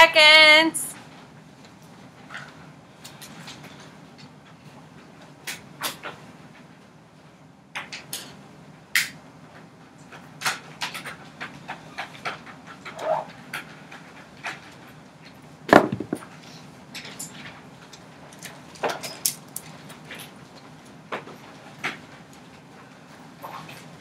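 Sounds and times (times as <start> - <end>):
clicks and knocks from desks: 15.7 - 16.4.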